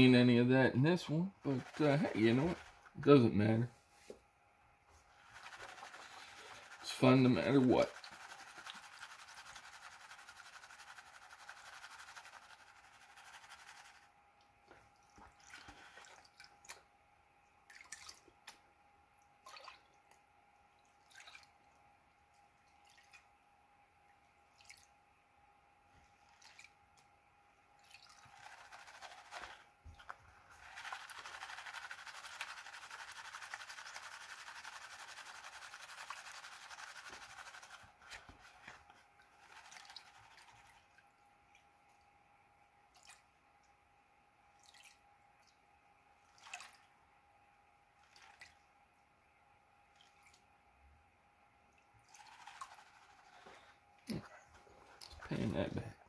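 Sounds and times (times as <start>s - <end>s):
small splashes: 14.9s - 16.9s, 17.7s - 18.5s, 19.4s - 20.2s, 20.9s - 21.7s, 22.7s - 23.3s, 24.5s - 24.9s, 26.3s - 26.8s, 27.8s - 38.7s, 42.9s - 43.3s, 44.6s - 45.0s, 46.3s - 46.9s, 48.0s - 48.6s.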